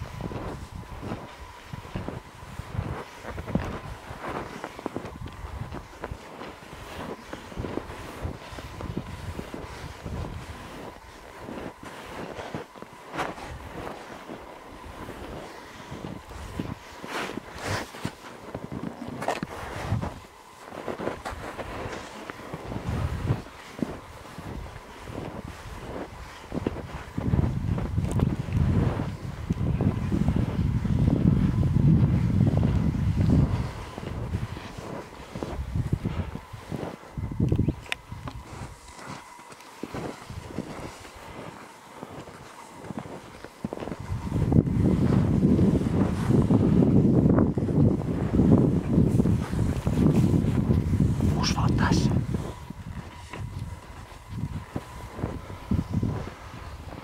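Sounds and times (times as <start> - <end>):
skis scraping on snow: 0.0 - 51.4, 52.1 - 57.0
ski pole plants: 0.0 - 57.0
wind noise on microphone: 0.0 - 57.0.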